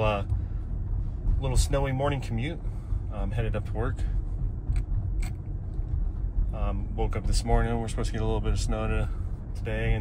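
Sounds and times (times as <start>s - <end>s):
car tyre road rumble: 0.0s - 10.0s.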